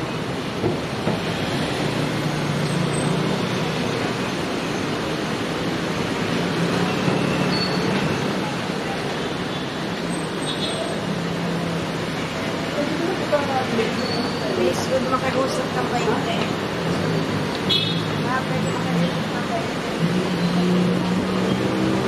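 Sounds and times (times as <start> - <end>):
road traffic: 0.0 - 22.0.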